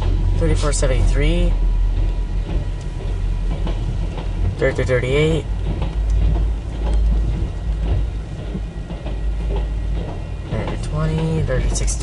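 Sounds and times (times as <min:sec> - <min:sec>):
train coaches rolling past: 0:00.0 - 0:12.0.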